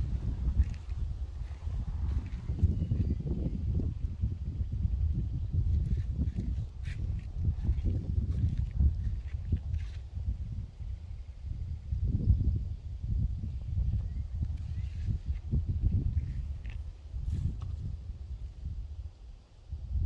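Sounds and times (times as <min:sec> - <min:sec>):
low rumble on microphone: 0:00.0 - 0:20.0.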